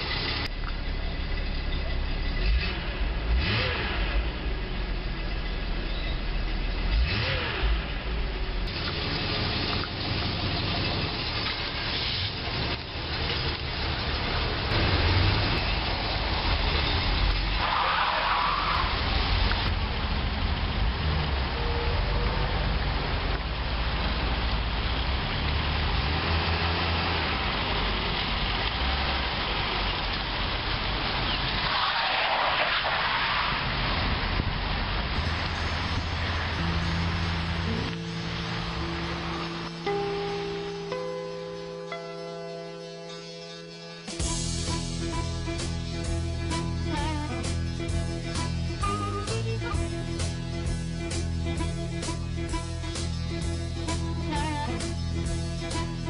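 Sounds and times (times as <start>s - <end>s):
car engine revving: 0.0s - 40.7s.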